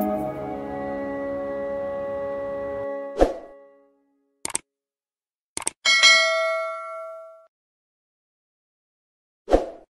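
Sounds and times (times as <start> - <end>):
background music: 0.0 - 4.1.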